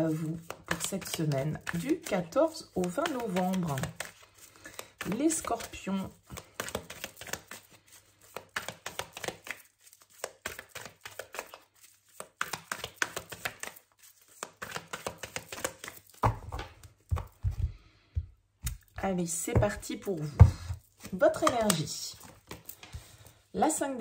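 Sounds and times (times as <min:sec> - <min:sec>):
cards being shuffled: 0:00.0 - 0:17.8, 0:18.6 - 0:23.4.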